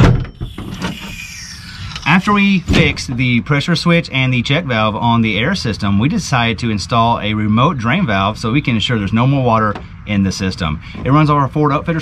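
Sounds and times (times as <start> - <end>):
low rumbling background noise: 0.8 - 12.0.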